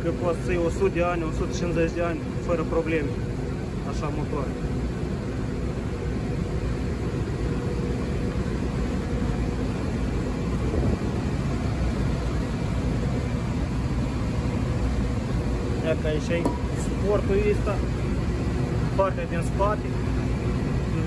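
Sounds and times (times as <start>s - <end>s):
faint hum: 0.0s - 21.0s
low mechanical rumble: 0.0s - 21.0s.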